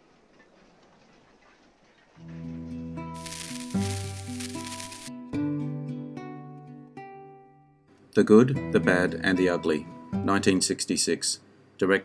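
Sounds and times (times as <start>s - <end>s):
faint soundtrack hiss: 7.9s - 12.0s.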